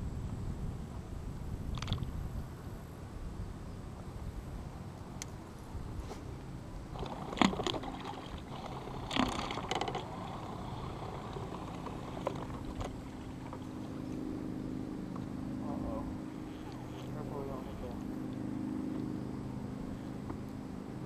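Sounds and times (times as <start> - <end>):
boat motor humming: 3.8 - 21.0.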